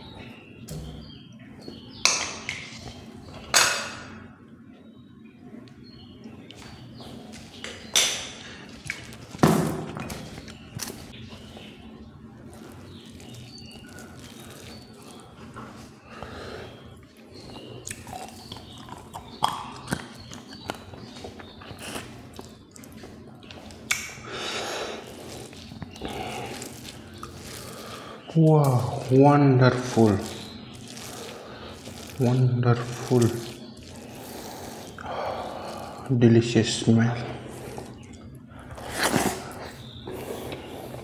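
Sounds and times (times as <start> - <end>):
man chewing with wet mouth clicks: 12.4 - 15.8, 17.0 - 28.3, 30.2 - 32.3, 37.5 - 41.0.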